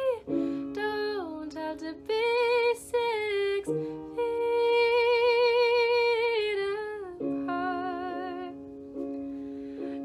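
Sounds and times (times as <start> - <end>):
woman singing: 0.0 - 8.7
piano backing track: 0.0 - 10.0.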